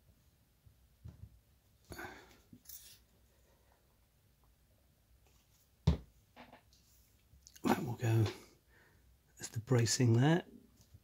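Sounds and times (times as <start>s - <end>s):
object knocked on wooden worktop: 5.8s - 6.6s.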